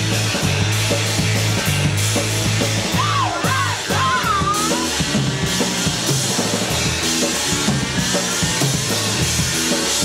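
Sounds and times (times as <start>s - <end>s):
drum kit: 0.0s - 10.0s
punk rock band playing live: 0.0s - 10.0s.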